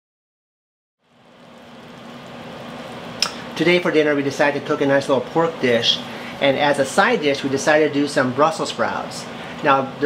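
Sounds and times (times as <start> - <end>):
low steady hum: 1.0 - 10.0.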